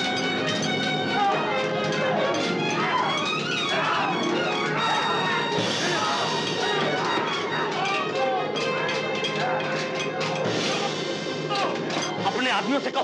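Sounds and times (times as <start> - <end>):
background music: 0.0 - 13.0
clanks of blows and blades: 0.0 - 13.0
men shouting: 0.1 - 12.6.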